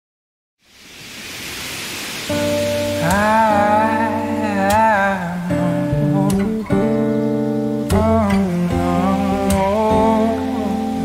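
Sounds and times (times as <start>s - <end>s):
waves breaking: 0.6s - 11.0s.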